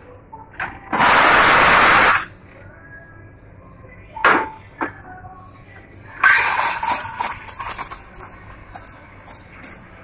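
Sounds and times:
steam wand hissing: 1.0s - 2.3s.

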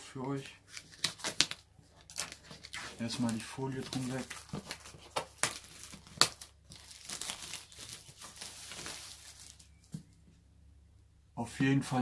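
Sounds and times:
plastic film crinkling: 0.3s - 10.0s.

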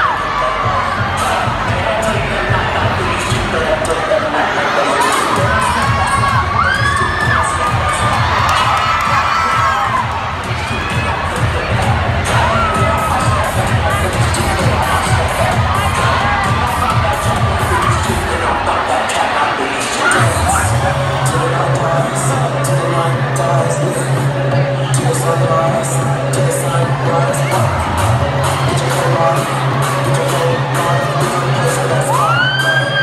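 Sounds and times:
bass beat of dance music: 0.0s - 19.0s, 20.1s - 33.0s
crowd cheering and screaming: 0.0s - 22.2s, 26.3s - 33.0s.

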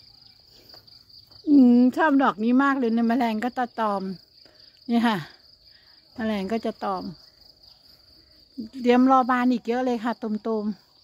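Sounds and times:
high-pitched insect trill: 0.0s - 11.0s
woman speaking: 1.4s - 4.2s, 4.8s - 5.4s, 6.2s - 7.2s, 8.6s - 10.9s.

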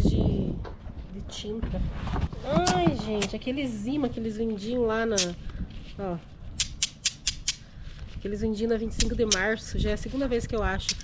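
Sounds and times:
magnets snapping together: 6.6s - 7.6s.

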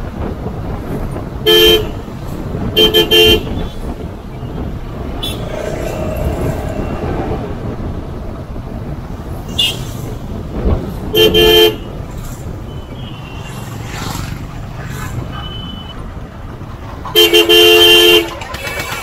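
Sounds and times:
motorbike engine and road noise: 0.0s - 19.0s.

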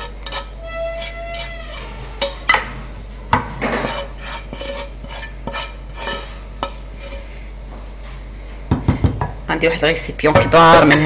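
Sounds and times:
spatula scraping frying pan: 0.0s - 8.0s.

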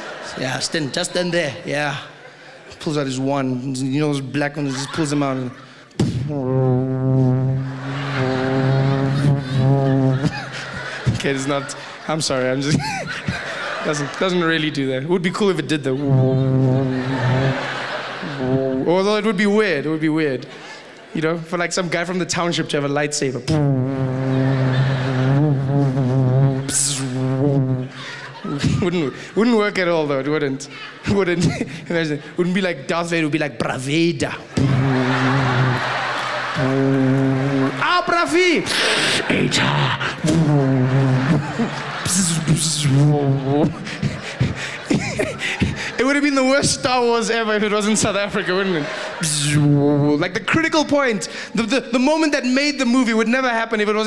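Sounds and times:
audience noise: 0.0s - 3.6s, 4.3s - 19.1s, 24.0s - 31.4s, 34.4s - 50.6s
man singing long notes: 6.4s - 10.4s, 16.0s - 18.9s.

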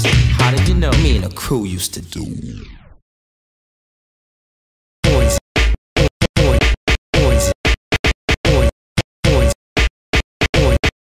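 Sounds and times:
turntable record scratching: 0.0s - 3.0s, 5.0s - 10.9s.

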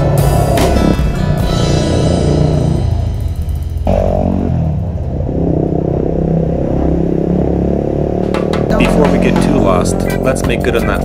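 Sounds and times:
motorcycle engine passing by: 3.8s - 11.0s.

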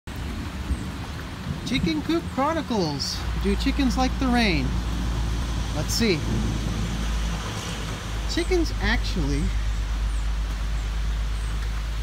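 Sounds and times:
pouring rain: 0.1s - 12.0s
wind rumble on microphone: 0.1s - 12.0s.

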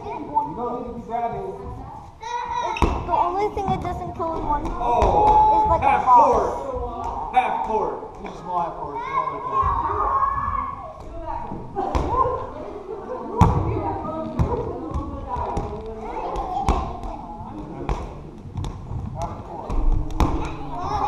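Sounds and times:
balls bouncing on wooden floor: 2.7s - 5.8s, 13.4s - 21.0s.

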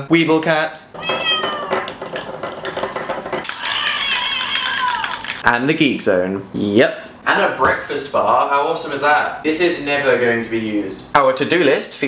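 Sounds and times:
high cat-like meows: 1.0s - 1.9s, 3.5s - 5.2s.

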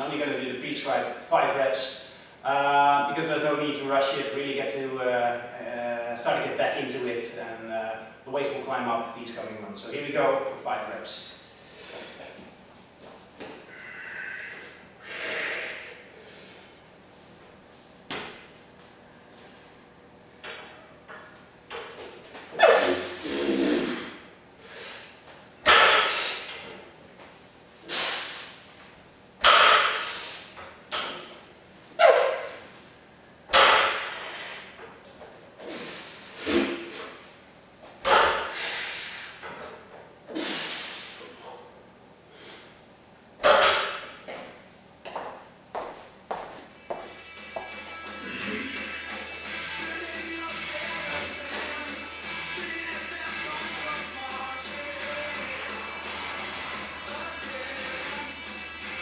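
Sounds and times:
loud exhale: 13.7s - 16.7s, 22.6s - 25.1s, 26.0s - 26.5s, 27.8s - 28.6s, 34.0s - 34.8s, 38.4s - 39.4s, 40.3s - 41.4s.

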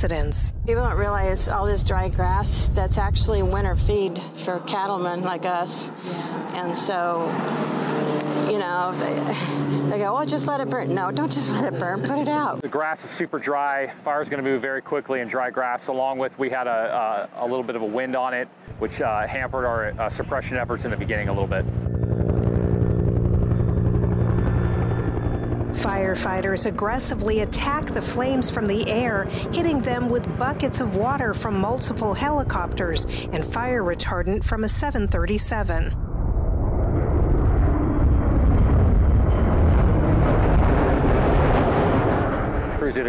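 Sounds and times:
helicopter rotor chopping: 0.0s - 13.2s, 17.6s - 43.0s
jet engines roaring: 0.0s - 13.5s, 18.4s - 43.0s.

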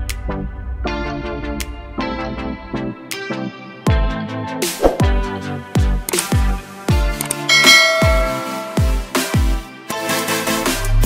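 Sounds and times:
electronic music with kick drum: 3.9s - 11.0s
click: 6.1s - 6.4s, 7.2s - 7.5s
bright bell-like chime: 7.5s - 9.5s.

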